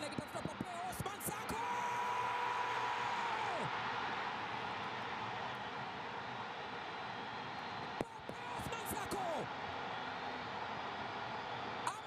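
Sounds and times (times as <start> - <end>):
excited football commentary: 0.0 - 3.7, 8.0 - 9.5.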